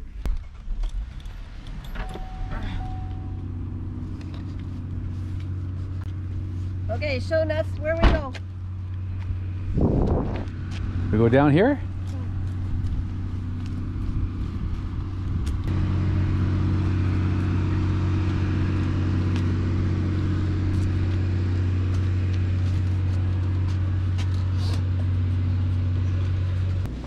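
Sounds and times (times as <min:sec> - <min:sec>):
car engine and road noise: 0:00.0 - 0:27.0.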